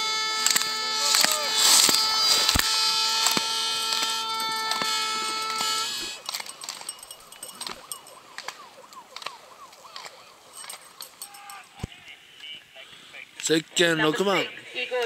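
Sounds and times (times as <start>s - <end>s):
skis scraping on snow: 0.0s - 7.8s
held horn tone: 0.0s - 12.6s.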